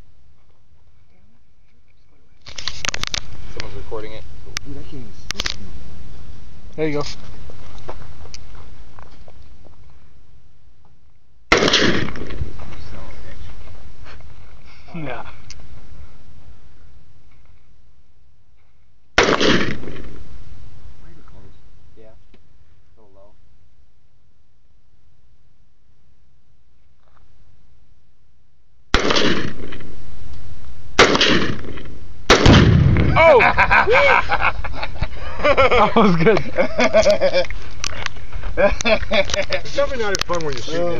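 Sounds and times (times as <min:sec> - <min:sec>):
gunshots: 0:11.5 - 0:12.5, 0:19.2 - 0:20.2, 0:28.9 - 0:29.8, 0:31.0 - 0:33.3
explosion boom: 0:31.0 - 0:33.5.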